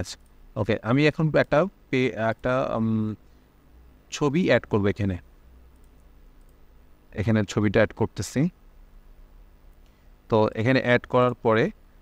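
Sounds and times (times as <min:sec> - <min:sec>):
low steady hum: 0:00.0 - 0:12.0
computer mouse clicks: 0:00.2 - 0:00.4, 0:05.7 - 0:06.7.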